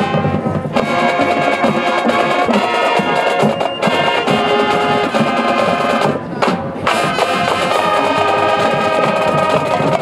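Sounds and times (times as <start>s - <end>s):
brass chords: 0.0s - 10.0s
drum-line percussion: 0.0s - 10.0s.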